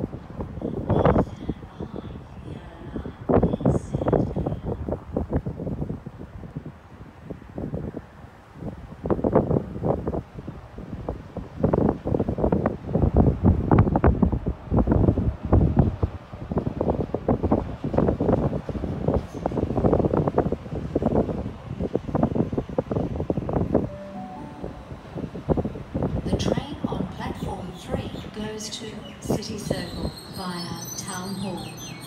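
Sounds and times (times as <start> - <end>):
wind buffeting microphone: 0.0 - 23.9, 24.7 - 30.5
brief steady tones: 23.8 - 25.6
electric train arriving: 23.8 - 26.2.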